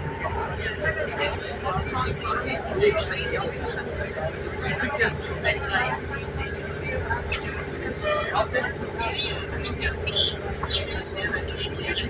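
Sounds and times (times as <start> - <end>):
passengers talking: 0.0 - 12.0
train rumble and hum: 0.0 - 12.0.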